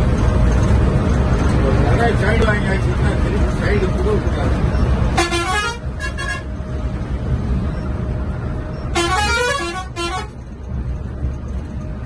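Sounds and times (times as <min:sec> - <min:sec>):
coach engine and tyres rumbling: 0:00.0 - 0:12.0
bus multi-tone air horn: 0:05.1 - 0:06.6, 0:08.8 - 0:10.4.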